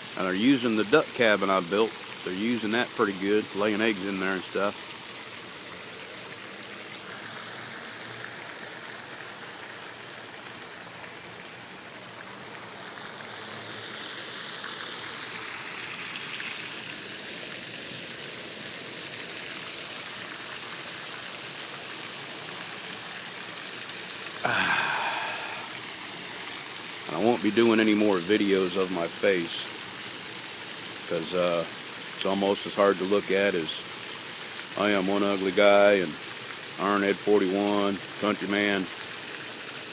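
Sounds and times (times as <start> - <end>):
fountain water splashing: 0.0 - 39.9.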